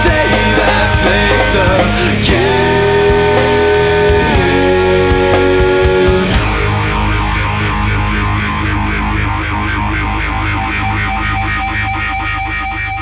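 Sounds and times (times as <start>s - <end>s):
distorted electric guitar: 0.0s - 13.0s.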